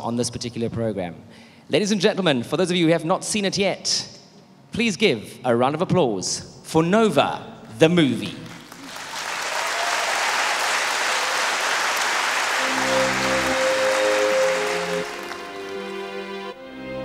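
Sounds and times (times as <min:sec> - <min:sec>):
audience applauding: 0:08.4 - 0:16.4
slow music with held chords: 0:12.6 - 0:17.0.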